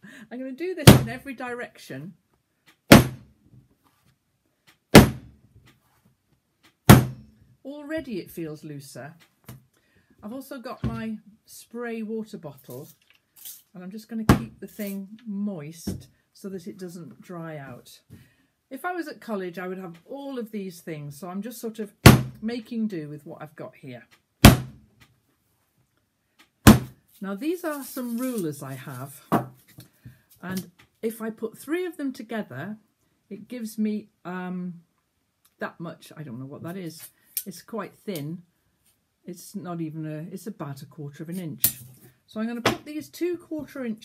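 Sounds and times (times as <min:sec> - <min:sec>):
clay block thudding on table: 0:02.9 - 0:03.3, 0:05.0 - 0:05.3, 0:06.9 - 0:07.2, 0:22.1 - 0:22.4, 0:24.4 - 0:24.8, 0:26.6 - 0:27.0.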